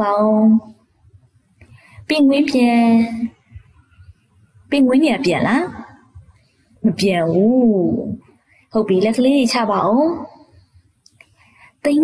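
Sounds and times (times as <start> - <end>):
person speaking: 2.1 - 3.4, 6.8 - 8.2.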